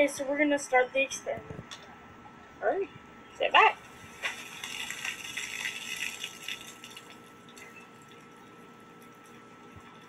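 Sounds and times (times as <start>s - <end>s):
soda foam fizzing and spraying: 4.0s - 7.0s.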